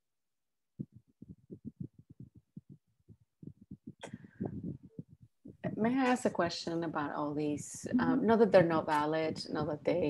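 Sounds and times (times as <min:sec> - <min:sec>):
rapid low thuds: 0:00.8 - 0:06.1.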